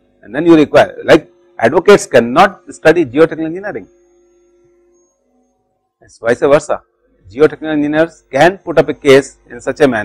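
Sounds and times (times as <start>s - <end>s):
faint steady tones: 0.0s - 10.0s.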